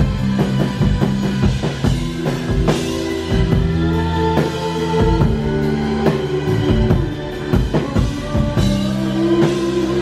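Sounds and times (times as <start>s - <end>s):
bass guitar line: 0.0s - 10.0s.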